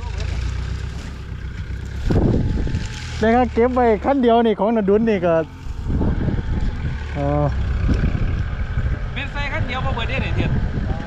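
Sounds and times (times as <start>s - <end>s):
diesel truck engine running: 0.0s - 11.0s.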